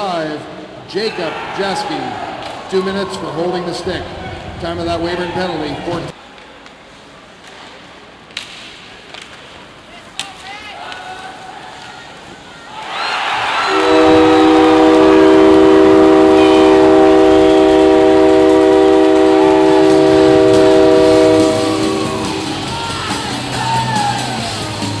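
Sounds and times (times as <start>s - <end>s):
crowd cheering: 10.8s - 25.0s
goal horn multi-tone chord: 13.7s - 22.6s.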